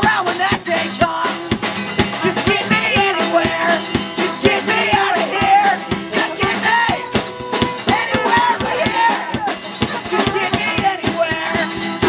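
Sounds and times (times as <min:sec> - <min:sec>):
acoustic guitar: 0:00.0 - 0:12.0
drum kit: 0:00.0 - 0:12.0
trumpet: 0:02.4 - 0:12.0.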